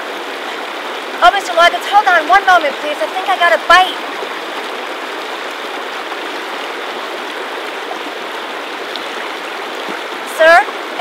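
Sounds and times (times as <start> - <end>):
stream rushing over rocks: 0.0 - 11.0.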